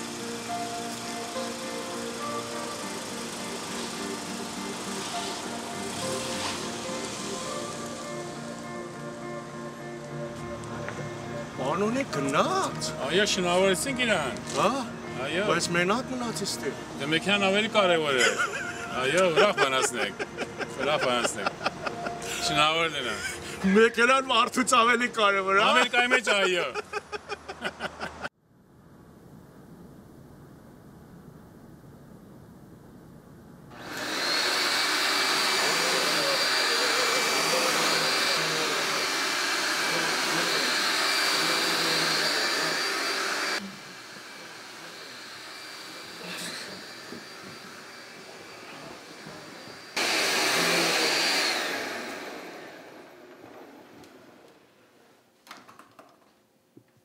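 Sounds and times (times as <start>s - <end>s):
vacuum cleaner whine: 0.0s - 28.3s, 33.7s - 55.2s.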